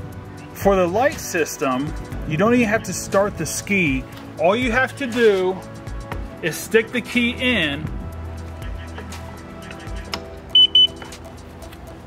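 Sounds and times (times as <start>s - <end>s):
short high-pitched electronic beeps: 10.6s - 11.0s.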